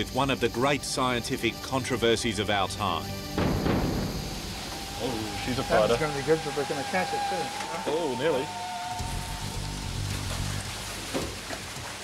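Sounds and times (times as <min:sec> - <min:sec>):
background music: 0:00.0 - 0:11.4
water splashing in fish tank: 0:04.8 - 0:12.0.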